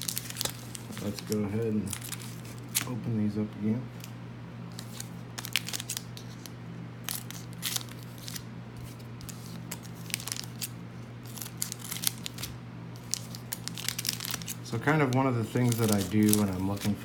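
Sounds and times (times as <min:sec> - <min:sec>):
foil wrappers crinkling: 0:00.0 - 0:03.1, 0:03.9 - 0:17.0
steady low hum: 0:00.0 - 0:17.0.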